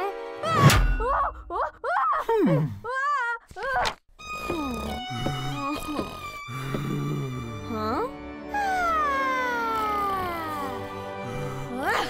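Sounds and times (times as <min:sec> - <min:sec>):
cartoon boy's dreamy vocal aww: 0:08.5 - 0:10.8.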